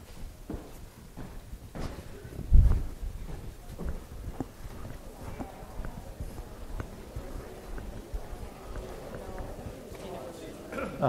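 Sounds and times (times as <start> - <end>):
footsteps on hardwood floor: 0.0 - 10.6.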